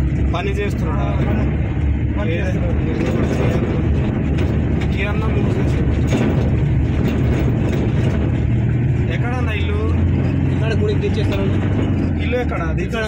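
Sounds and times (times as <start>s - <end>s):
van engine and road rumble: 0.0s - 13.0s
voices: 9.1s - 13.0s.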